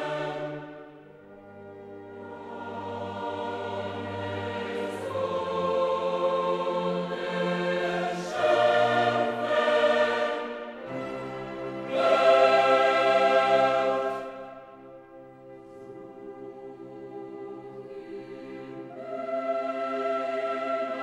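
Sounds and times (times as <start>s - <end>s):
choir singing held chords: 0.0s - 21.0s.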